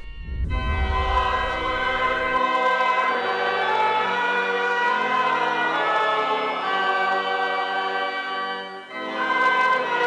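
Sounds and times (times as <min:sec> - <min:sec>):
low rumble: 0:00.0 - 0:02.4
church choir singing: 0:00.0 - 0:10.0.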